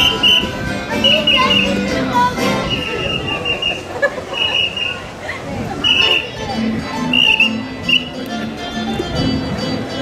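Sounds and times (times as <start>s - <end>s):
whistle toots: 0.0s - 1.8s, 2.6s - 5.0s, 5.8s - 6.3s, 7.0s - 8.2s.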